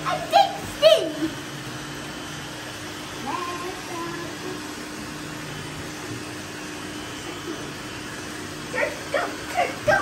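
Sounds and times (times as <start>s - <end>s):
robot vacuum cleaners humming: 0.0s - 10.0s.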